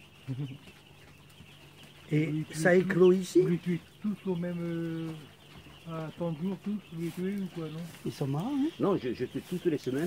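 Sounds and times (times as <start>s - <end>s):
chicks peeping: 0.0s - 10.0s.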